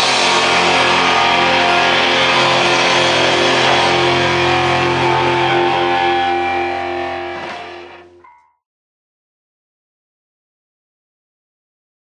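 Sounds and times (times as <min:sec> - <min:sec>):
electric guitars sustained chord: 0:00.0 - 0:08.3.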